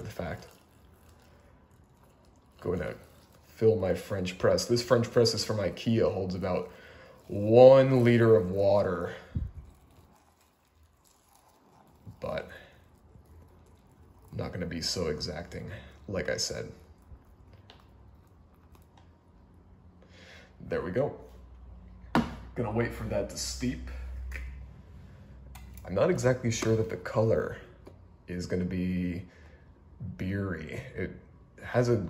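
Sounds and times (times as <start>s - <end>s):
low steady hum: 0.0s - 32.0s.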